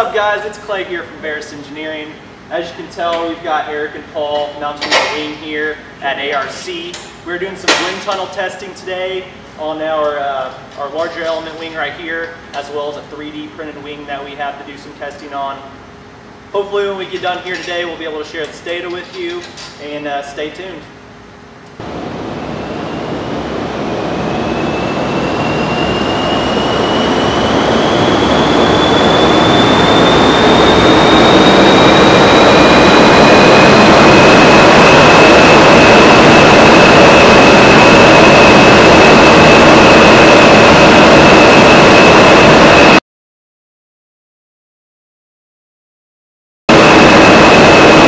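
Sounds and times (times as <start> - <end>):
whine rising in pitch: 21.7 - 43.0, 46.7 - 48.0
wind tunnel air rushing: 21.8 - 43.0, 46.7 - 48.0.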